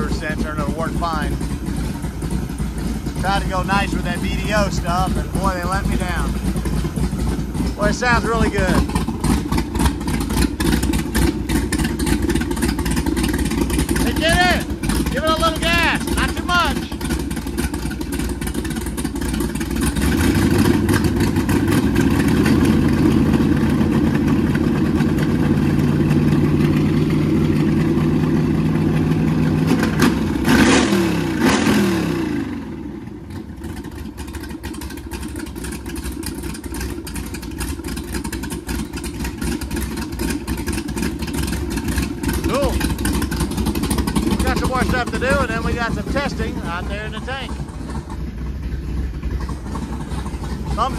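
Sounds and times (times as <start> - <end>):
boat engine revving and idling: 0.0 - 50.9.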